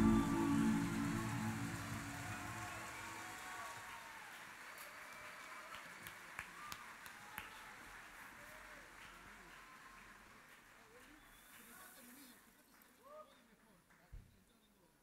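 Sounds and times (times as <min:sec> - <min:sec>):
band final chord ringing: 0:00.0 - 0:03.3
faint hand claps: 0:00.0 - 0:11.9.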